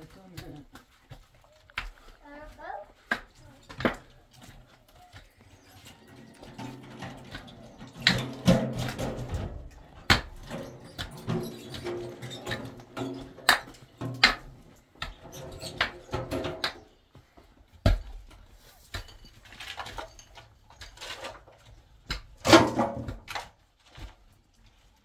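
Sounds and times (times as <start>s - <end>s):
dirt and stones scraping: 3.4s - 16.5s.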